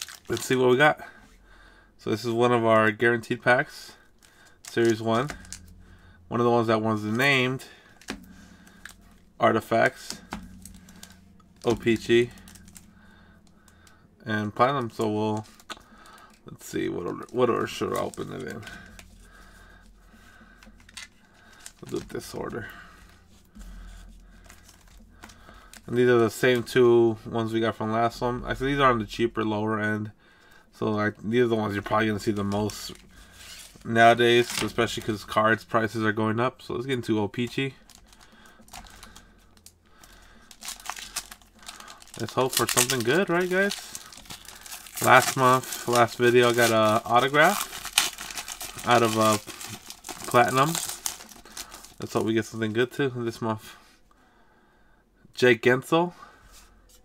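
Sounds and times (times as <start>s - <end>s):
foil wrappers crinkling: 0.0s - 0.8s, 3.8s - 26.8s, 31.6s - 36.2s, 37.0s - 52.8s
low steady hum: 0.0s - 57.0s
person speaking: 16.4s - 19.0s, 25.6s - 37.9s, 42.1s - 44.2s, 44.8s - 47.7s, 48.8s - 50.9s.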